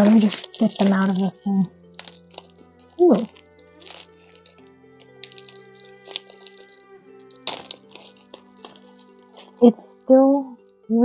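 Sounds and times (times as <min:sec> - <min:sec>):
bubble-wrap pouch crinkling: 0:00.0 - 0:09.6
soft background music: 0:00.0 - 0:11.0.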